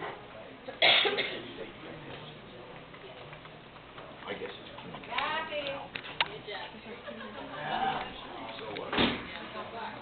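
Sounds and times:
murmur of people talking: 0.0s - 10.0s
loud cough: 0.8s - 1.5s.

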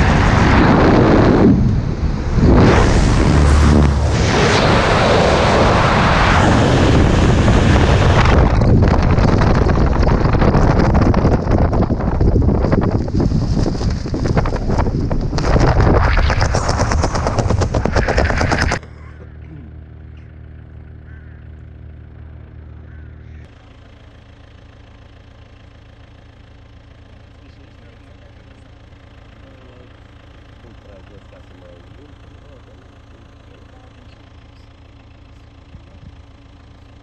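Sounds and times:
steady low hum: 0.0s - 37.0s
wind buffeting microphone: 6.5s - 18.8s.

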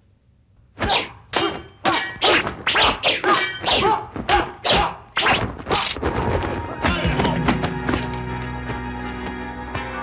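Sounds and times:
weapons clanging: 3.2s - 4.0s.

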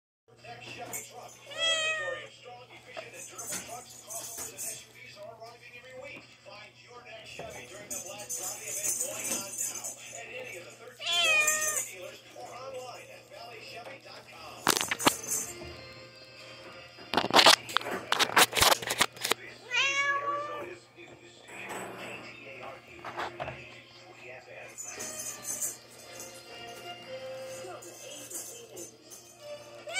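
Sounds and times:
kitten meowing: 11.0s - 11.8s, 19.7s - 20.7s
sharp clicks and rustles: 14.7s - 15.3s, 17.1s - 19.4s.

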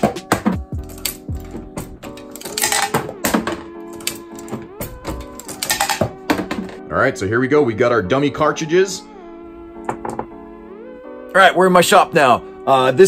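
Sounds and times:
background music: 0.0s - 13.0s
reloading press clicks and clunks: 0.8s - 6.8s.

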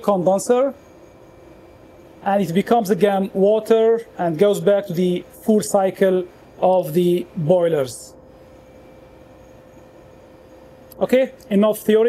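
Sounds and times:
background hum and hiss: 0.0s - 12.0s
thin constant tone: 0.0s - 12.0s.

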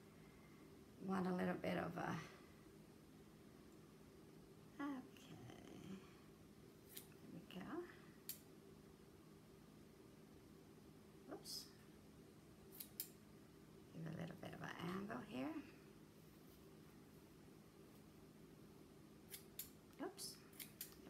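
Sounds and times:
scissors snipping ribbon: 20.5s - 21.0s.

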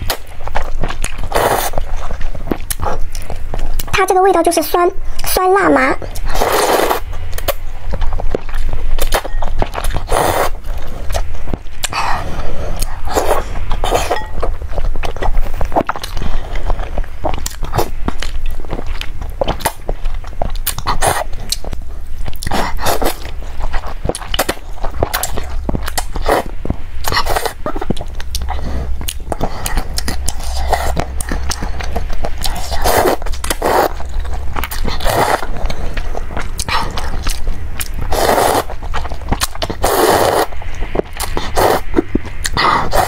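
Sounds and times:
wet chewing: 0.0s - 4.0s, 6.0s - 43.0s
steady low hum: 0.0s - 43.0s
slurping noodles: 1.3s - 1.9s, 6.3s - 7.0s, 9.8s - 11.2s, 28.5s - 34.1s, 34.8s - 36.0s, 38.1s - 40.6s, 41.2s - 43.0s.

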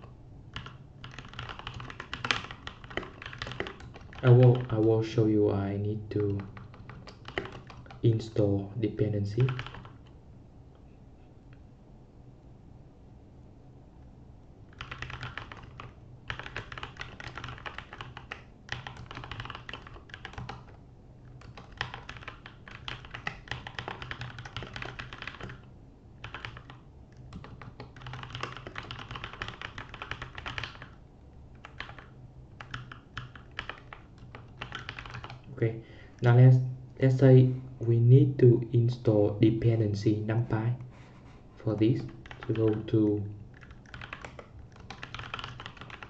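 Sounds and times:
computer keyboard typing: 0.5s - 5.2s, 6.2s - 8.3s, 9.3s - 10.2s, 14.7s - 36.3s, 41.9s - 46.0s.

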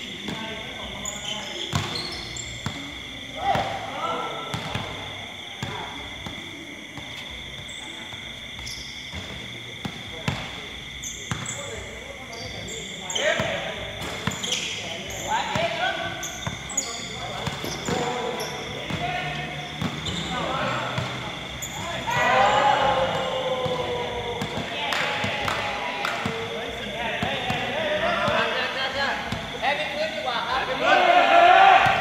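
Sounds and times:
sneakers squeaking: 0.0s - 32.0s
basketball bouncing on court: 4.5s - 4.9s, 11.3s - 11.6s, 23.1s - 26.4s
players shouting: 15.1s - 29.1s, 30.4s - 32.0s.

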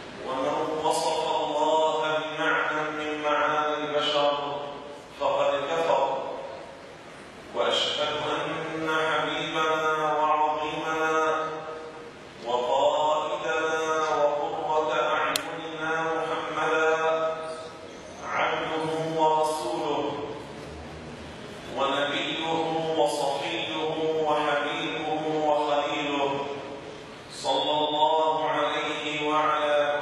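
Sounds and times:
man chanting into a microphone: 0.2s - 6.7s, 7.5s - 20.6s, 21.7s - 30.0s
sharp click: 15.3s - 15.5s.

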